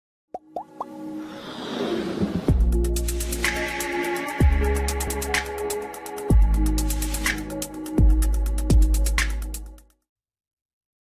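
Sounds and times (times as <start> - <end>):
whoosh: 1.2 - 2.9.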